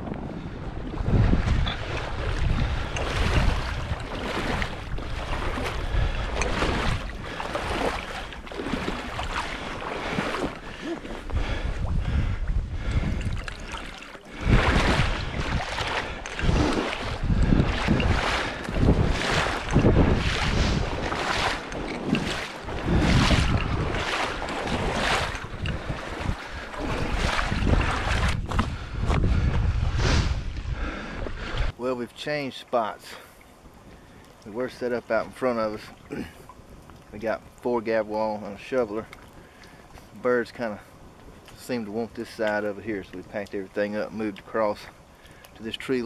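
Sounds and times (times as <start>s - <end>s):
gusty wind buffeting microphone: 0.0s - 31.8s.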